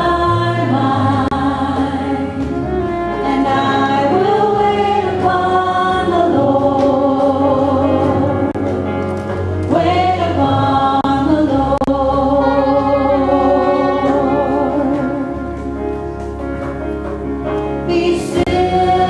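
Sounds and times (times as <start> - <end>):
group singing a hymn: 0.0 - 8.8, 9.6 - 15.7, 17.9 - 19.0
instrumental accompaniment: 0.0 - 19.0.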